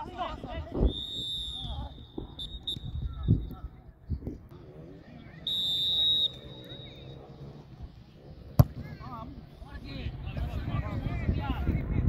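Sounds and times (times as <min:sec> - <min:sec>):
players' voices: 0:00.0 - 0:12.0
referee's whistle blast: 0:00.9 - 0:03.0, 0:05.5 - 0:07.0.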